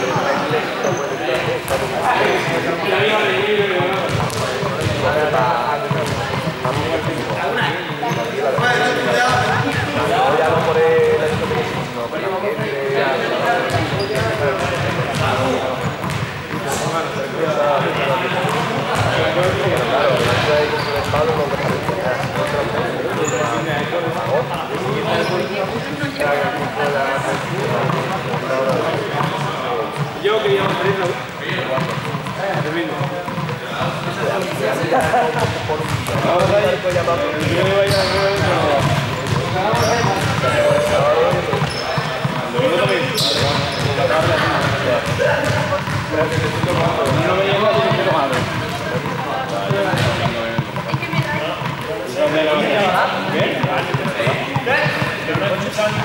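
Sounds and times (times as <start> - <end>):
balls bouncing on hard floor: 0.0 - 56.0
many voices chattering: 0.0 - 56.0.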